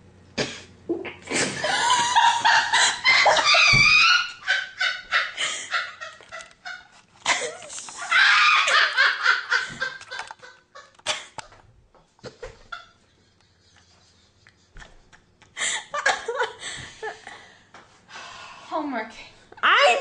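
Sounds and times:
woman laughing loudly: 1.2 - 11.5, 12.2 - 17.4.

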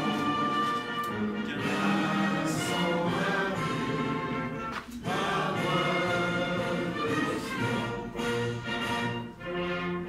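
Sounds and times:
anthem played over loudspeakers: 0.0 - 10.0
orchestra with singing voices: 0.0 - 10.0.

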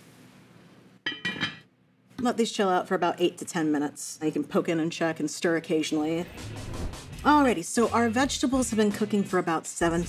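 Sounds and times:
pot lid clinking: 1.1 - 1.6.

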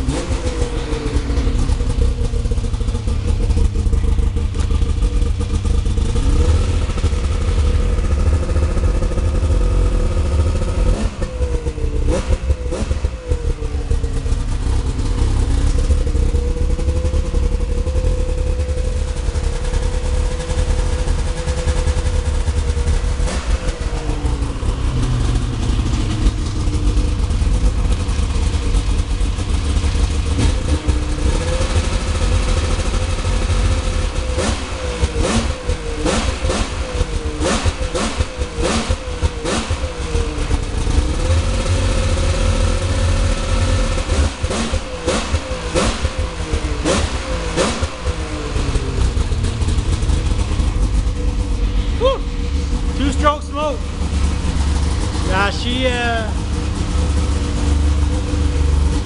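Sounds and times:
snowmobile engine running: 0.0 - 35.1, 48.5 - 59.0.

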